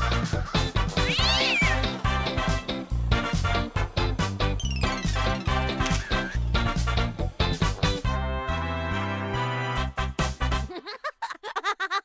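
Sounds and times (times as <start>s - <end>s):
upbeat cartoon music: 0.0s - 10.9s
cartoon cat meow: 1.0s - 1.9s.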